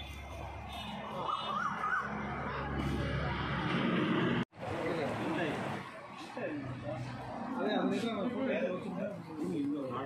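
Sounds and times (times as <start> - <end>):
siren rising and falling: 1.2 - 4.4.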